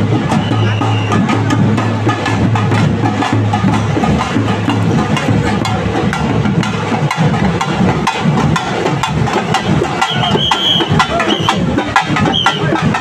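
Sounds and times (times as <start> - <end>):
procession drums beaten fast: 0.0 - 13.0.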